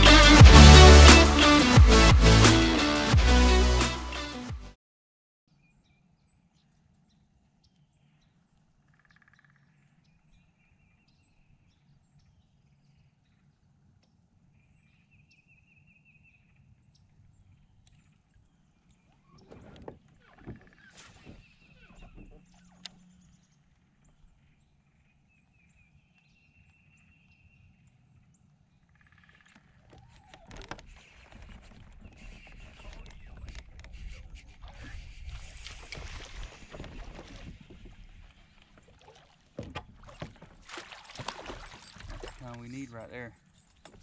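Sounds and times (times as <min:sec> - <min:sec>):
birds trilling: 0:17.4 - 0:24.6, 0:28.9 - 0:44.0.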